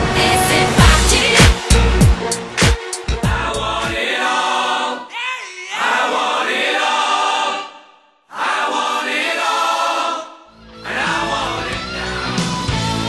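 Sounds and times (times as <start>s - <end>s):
choir singing with music: 0.0s - 13.0s.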